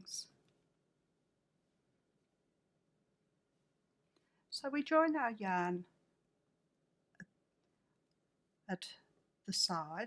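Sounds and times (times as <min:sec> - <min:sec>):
person speaking: 0:04.5 - 0:06.0.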